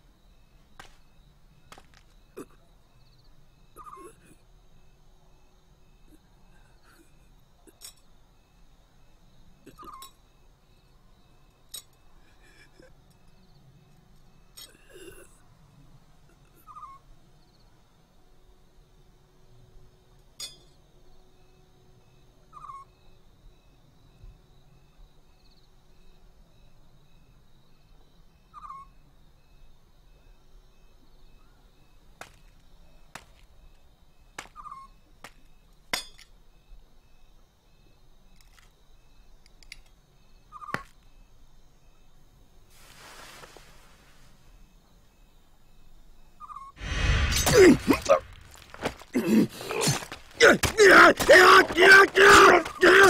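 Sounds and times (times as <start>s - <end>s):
owl hooting: 16.5s - 17.0s, 22.5s - 22.9s, 28.5s - 28.9s
light metallic clinks: 20.4s - 20.8s.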